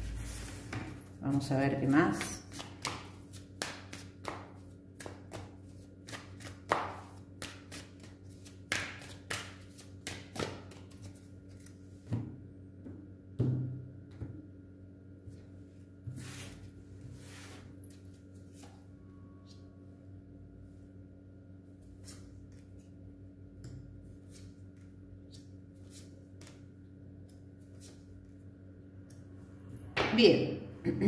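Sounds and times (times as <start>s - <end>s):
faint steady hum: 0.0s - 31.0s
cards being shuffled: 2.1s - 11.9s.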